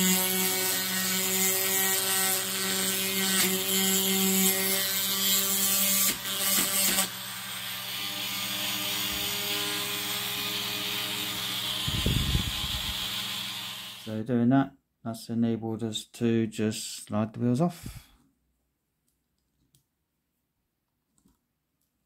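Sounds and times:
rotary tool grinding metal: 0.0s - 14.1s.

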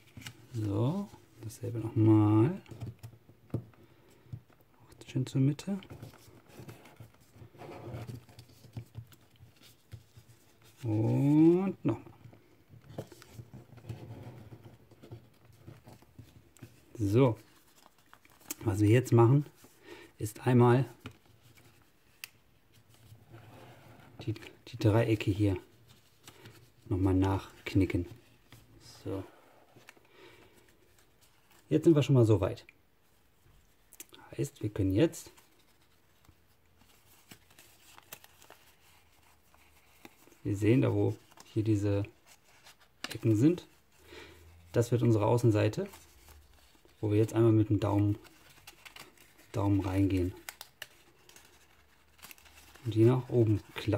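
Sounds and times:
paper rustling and creasing: 0.0s - 4.6s, 5.5s - 19.8s, 34.9s - 53.9s.

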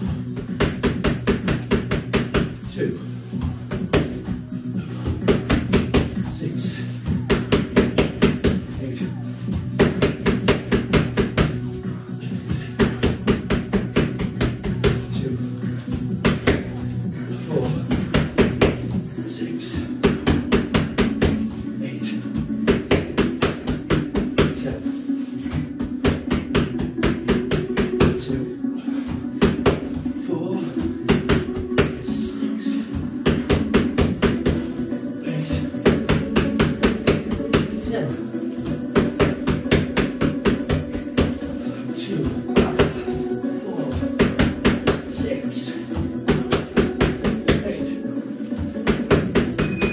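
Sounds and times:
background music: 0.0s - 49.9s
boxing gloves smacking mitts: 0.4s - 2.6s, 3.3s - 4.4s, 5.0s - 6.3s, 7.1s - 8.7s, 9.5s - 11.6s, 12.8s - 15.0s, 15.9s - 16.8s, 17.9s - 19.0s, 20.0s - 21.4s, 22.4s - 24.6s, 25.5s - 28.2s, 29.4s - 30.0s, 31.0s - 32.1s, 33.0s - 34.6s, 35.6s - 38.1s, 38.7s - 41.5s, 43.9s - 45.2s, 48.6s - 49.9s.

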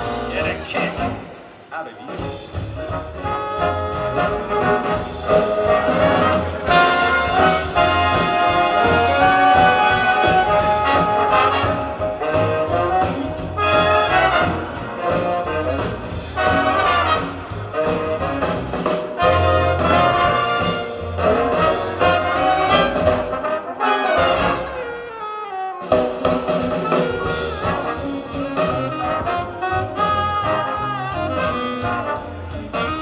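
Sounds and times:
bass line: 0.0s - 1.4s, 2.2s - 25.0s, 25.9s - 33.0s
big band brass playing: 0.0s - 33.0s.

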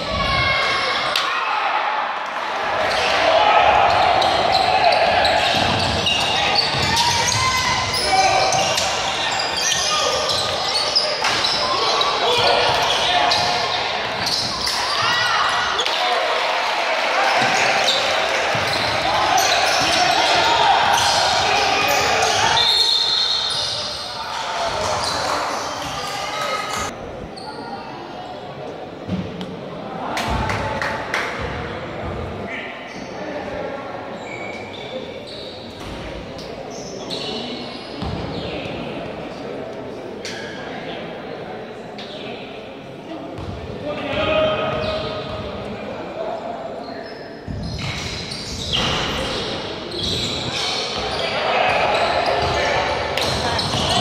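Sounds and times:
indistinct shouting and chatter: 0.0s - 29.0s, 29.6s - 54.0s.

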